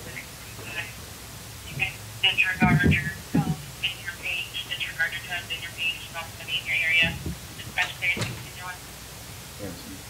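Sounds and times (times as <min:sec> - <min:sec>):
tinny speech over two-way radio: 0:00.0 - 0:00.9, 0:01.7 - 0:08.8.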